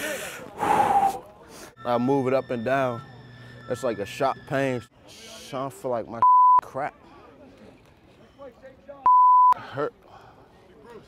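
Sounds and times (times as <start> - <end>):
person gasping: 0.0 - 1.8.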